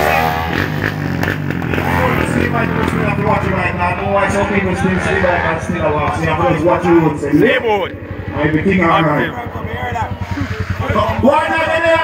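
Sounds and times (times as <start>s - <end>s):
crowd noise: 0.0s - 12.0s
engine revving and running: 0.0s - 12.0s.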